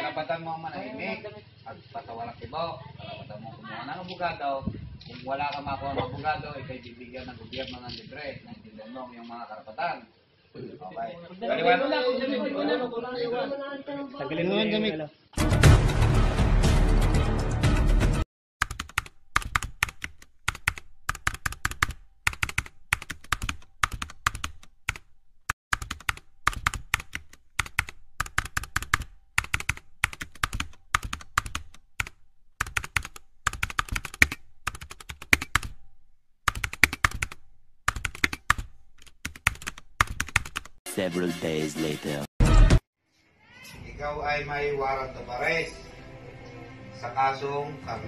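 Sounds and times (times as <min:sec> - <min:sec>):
computer keyboard typing: 0:18.6 - 0:40.8.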